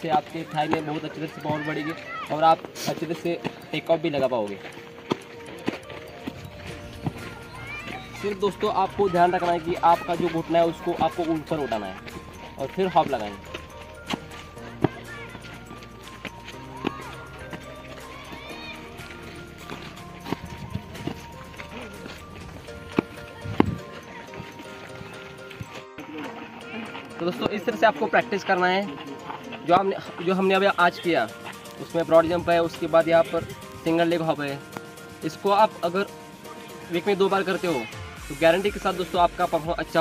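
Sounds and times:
feet thudding on dirt track: 0.0s - 27.6s
background music sustained notes: 0.0s - 40.0s.

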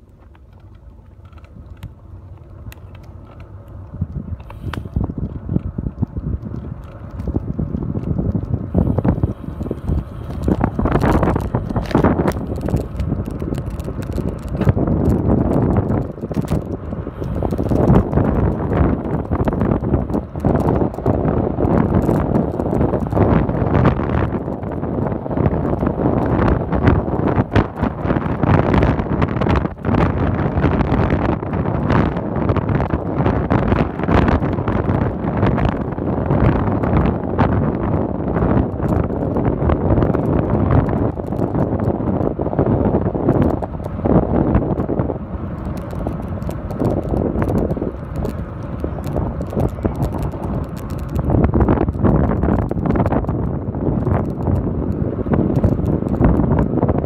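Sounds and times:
bicycle knocks and rattles: 0.0s - 57.0s
road noise: 0.0s - 57.0s
wind buffeting microphone: 0.0s - 57.0s.

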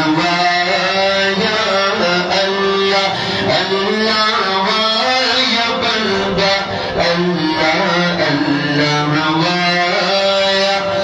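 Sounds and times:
man singing unaccompanied: 0.0s - 11.0s.

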